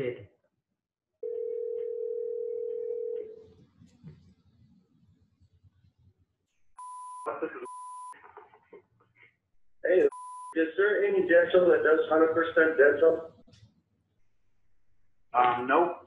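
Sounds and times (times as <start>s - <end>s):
telephone ringback tone: 1.2s - 3.4s
censor bleeps: 6.8s - 8.2s, 10.1s - 10.6s
person speaking on phone: 7.2s - 7.8s.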